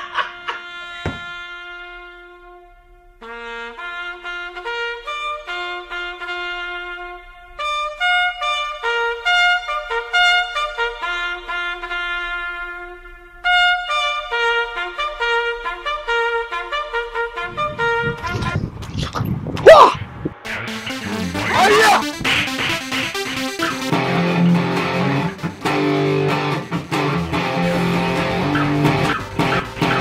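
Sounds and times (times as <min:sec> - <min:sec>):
trumpet playing slow melody: 0:00.1 - 0:18.4, 0:20.5 - 0:30.0
loud rough low noise: 0:20.0 - 0:30.0.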